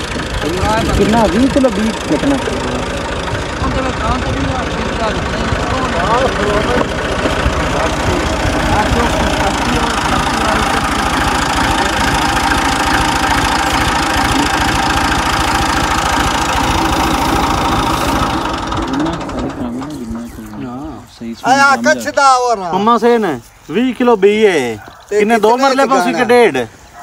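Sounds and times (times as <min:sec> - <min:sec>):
diesel tractor engine running: 0:00.0 - 0:27.0.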